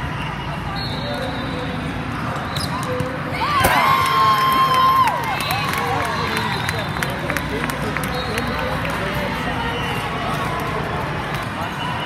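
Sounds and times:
people shouting and cheering: 3.3 - 12.0.

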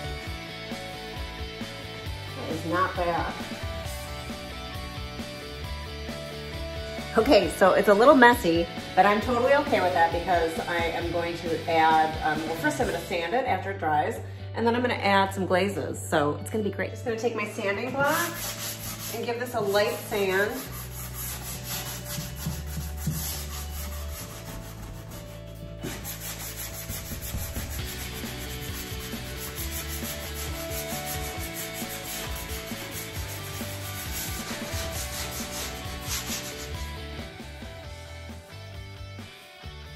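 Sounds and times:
sanding block rasping on wood: 18.0 - 37.0.

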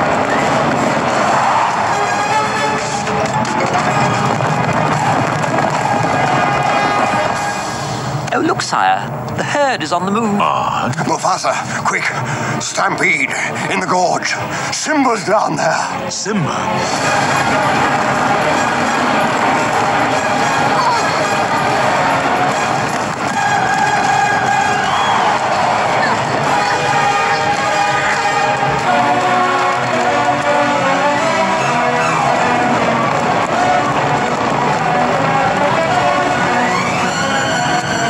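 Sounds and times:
orchestral film score with choir: 0.0 - 8.2, 11.5 - 38.0.

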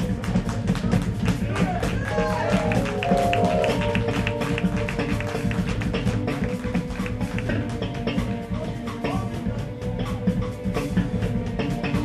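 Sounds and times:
jazz trio playing: 0.0 - 12.0
bass line: 2.0 - 8.0.

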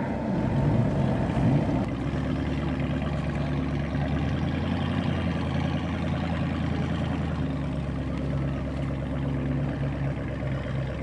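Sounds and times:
motorboat engine running: 0.0 - 11.0.

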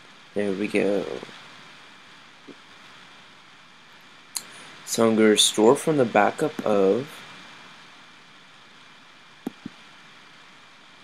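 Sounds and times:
room tone hiss: 0.0 - 11.0
soft clicks: 9.4 - 9.8.

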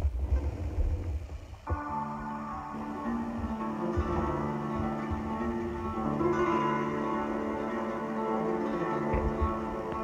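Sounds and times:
low rumble: 0.0 - 7.2
background music with held notes: 1.6 - 10.0.

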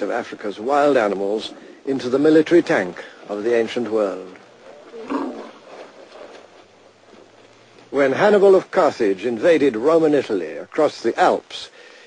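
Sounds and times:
elephant roaring: 4.6 - 6.4.

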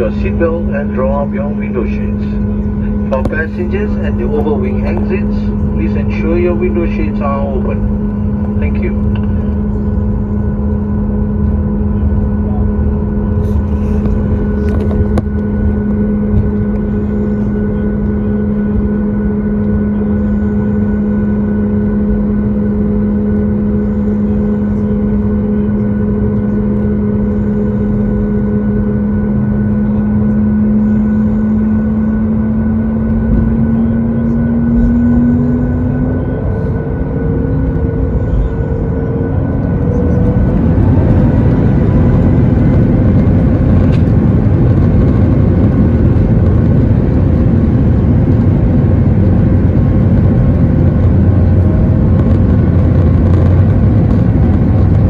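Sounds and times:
jet engines humming and rumbling: 0.0 - 55.0.

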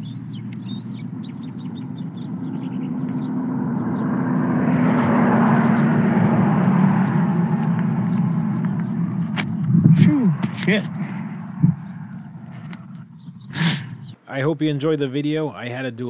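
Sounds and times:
low rumble: 0.0 - 14.2
vehicle passing: 0.0 - 14.2.

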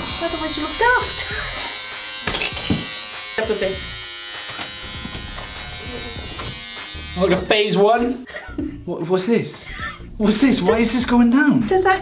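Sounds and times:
electric hair clippers buzzing: 0.0 - 7.5.

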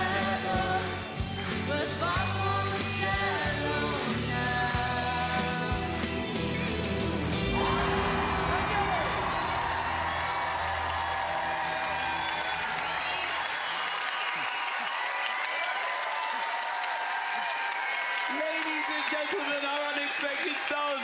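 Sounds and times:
held chord of backing music: 0.0 - 12.5
audience applauding and cheering: 0.0 - 21.0
whoops: 7.6 - 19.2.

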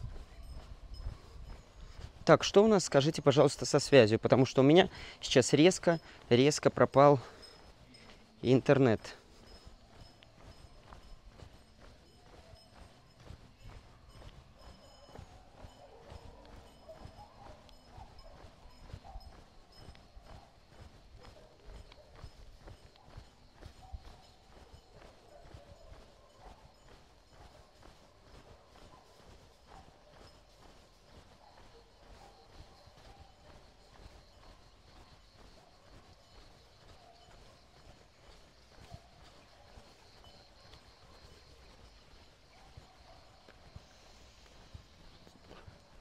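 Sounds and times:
faint footsteps: 0.0 - 46.0.

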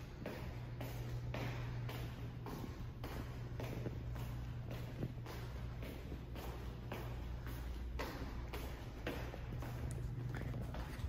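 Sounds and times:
footsteps on tiled floor: 0.0 - 11.0
steady low hum: 0.0 - 11.0.

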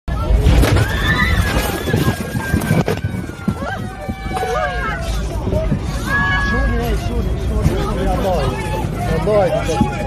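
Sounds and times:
passengers screaming and crying out: 0.1 - 10.0.

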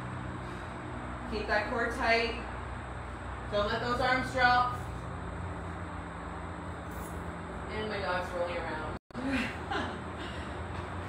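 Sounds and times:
expressway traffic noise: 0.0 - 11.0.

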